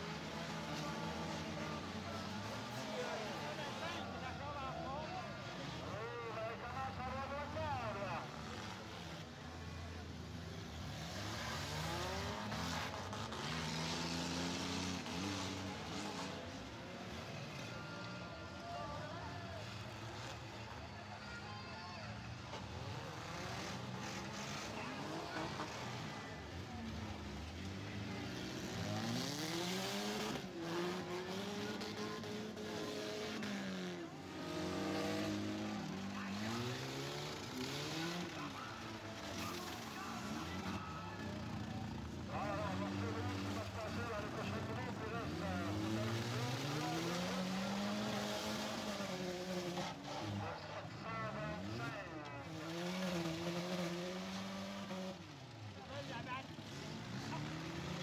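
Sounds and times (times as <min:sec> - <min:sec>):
car engines revving: 0:00.0 - 0:58.0.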